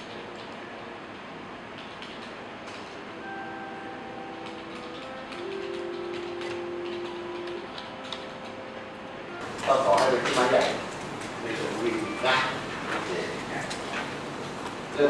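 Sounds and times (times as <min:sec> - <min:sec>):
room noise: 0:00.0 - 0:15.0
keyboard and mouse clicks: 0:01.8 - 0:03.0, 0:04.4 - 0:08.6
faint steady tones: 0:03.1 - 0:09.6.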